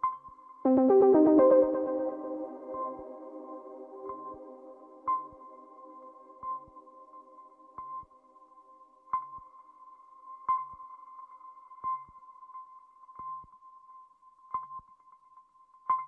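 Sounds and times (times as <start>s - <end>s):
held high electronic tone: 0.7s - 5.5s
low sustained chord: 0.7s - 7.1s.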